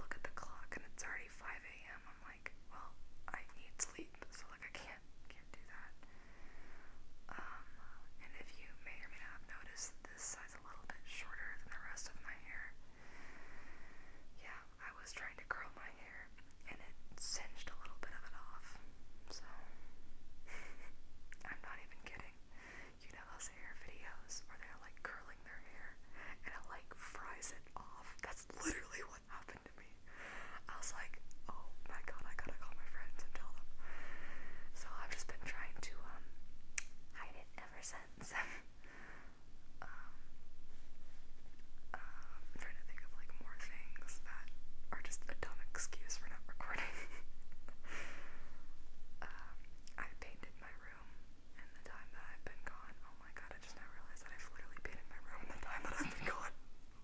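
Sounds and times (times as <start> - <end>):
woman whispering: 0.0 - 6.0, 7.3 - 12.8, 14.4 - 19.8, 20.5 - 22.4, 23.0 - 33.7, 34.8 - 36.3, 37.2 - 38.6, 39.8 - 40.3, 41.9 - 47.2, 49.2 - 56.6.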